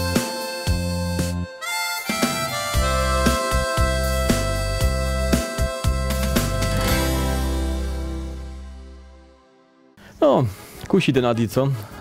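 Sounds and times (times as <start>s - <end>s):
bass and backing music: 0.0s - 9.4s
harmonica melody: 0.0s - 9.9s.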